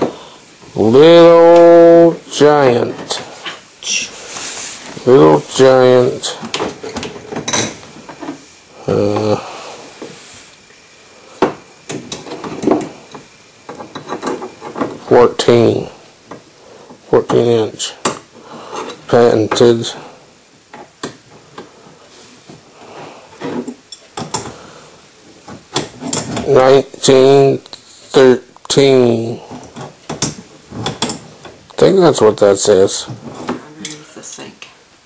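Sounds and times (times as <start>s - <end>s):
murmured voice: 8.8s - 9.6s.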